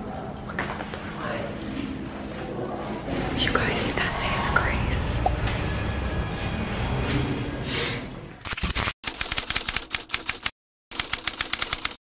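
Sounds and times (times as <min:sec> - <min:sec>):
typewriter keystroke clicks: 0:08.6 - 0:12.0.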